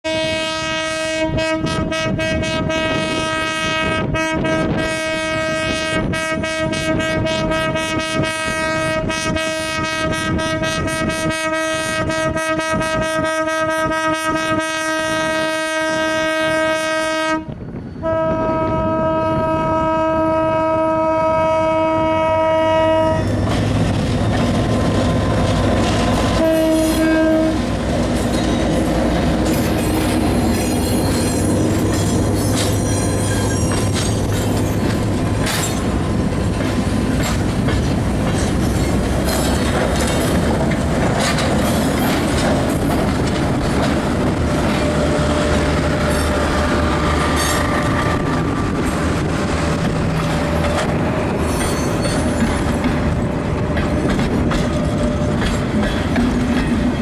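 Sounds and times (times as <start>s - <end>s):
locomotive air horn blasts: 0.0s - 23.4s, 26.3s - 27.8s
train wheels clattering over rail joints: 23.2s - 57.0s.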